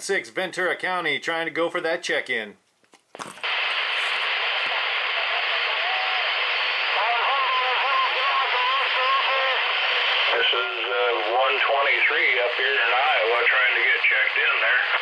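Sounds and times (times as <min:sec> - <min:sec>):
radio static hiss: 0:03.2 - 0:15.0
faint wavering radio voice: 0:03.8 - 0:15.0.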